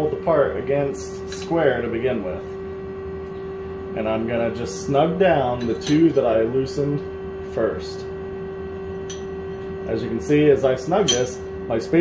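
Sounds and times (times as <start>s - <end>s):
lathe humming: 0.0s - 12.0s.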